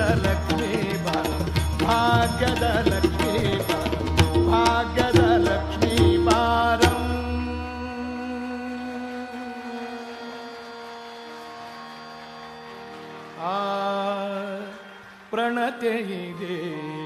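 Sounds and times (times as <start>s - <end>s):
tabla strokes: 0.0s - 7.6s
person singing: 0.0s - 11.1s, 13.4s - 17.0s
tanpura drone: 0.0s - 15.0s.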